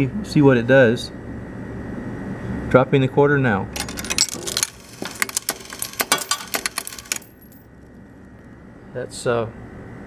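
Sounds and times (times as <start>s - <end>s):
coin mechanism metallic clicks: 3.8s - 7.7s
coins clattering out: 3.8s - 7.7s.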